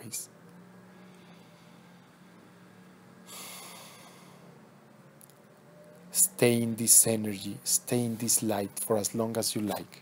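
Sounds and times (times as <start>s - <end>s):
faint steady hum: 0.0s - 10.0s
breath close to microphone: 3.3s - 4.5s.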